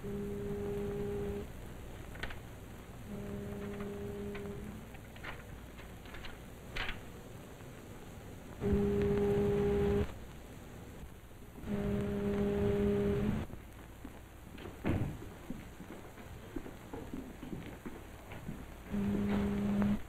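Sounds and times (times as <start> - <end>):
ship foghorn blasts: 3.1 - 4.8, 8.6 - 10.1, 11.6 - 13.4.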